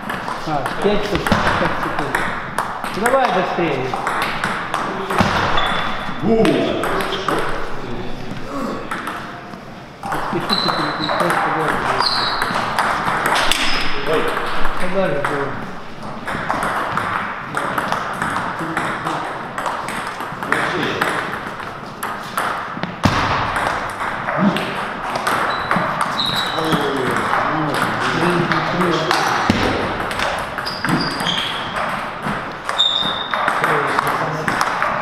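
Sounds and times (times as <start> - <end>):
ball bouncing on table: 0.0 - 9.3, 10.0 - 35.0
table tennis ball hitting paddles: 0.0 - 35.0.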